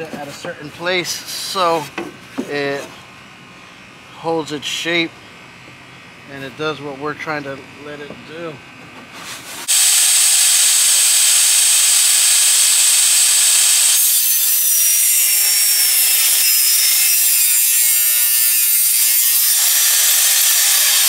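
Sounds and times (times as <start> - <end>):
table saw cutting plywood: 9.6 - 21.0
falling whine: 9.7 - 14.7.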